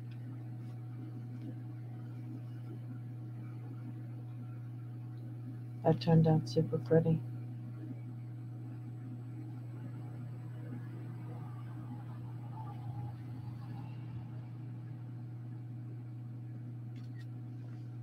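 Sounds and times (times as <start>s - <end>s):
low machine hum: 0.0s - 18.0s.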